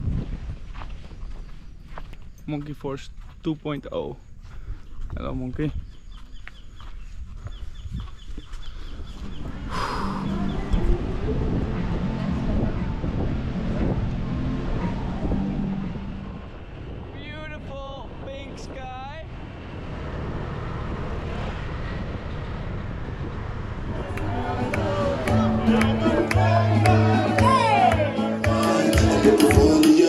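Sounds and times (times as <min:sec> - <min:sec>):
wind and road rush: 0:00.0 - 0:27.4
low rumble: 0:08.8 - 0:27.6.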